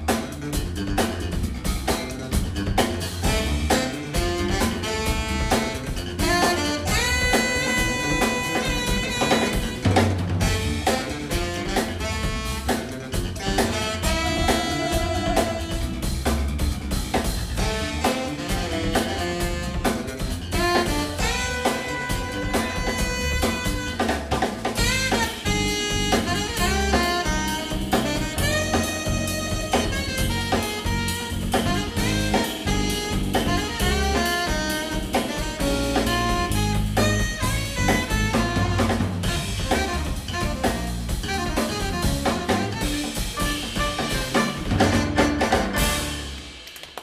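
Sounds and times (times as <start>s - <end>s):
jazz band playing: 0.0s - 46.8s
electric guitar: 0.0s - 46.9s
drum kit keeping time: 0.0s - 47.0s
saxophone long note: 3.2s - 12.8s, 13.4s - 16.3s, 17.6s - 24.2s, 24.8s - 46.5s.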